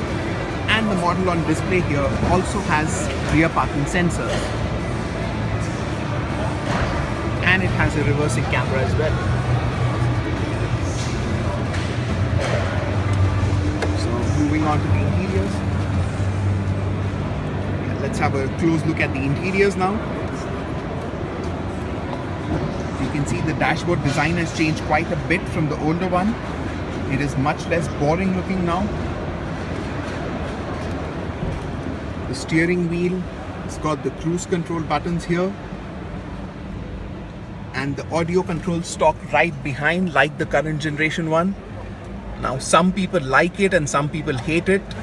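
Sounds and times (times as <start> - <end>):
busy exhibition hall rumble: 0.0 - 45.0
steady low hum: 0.0 - 45.0.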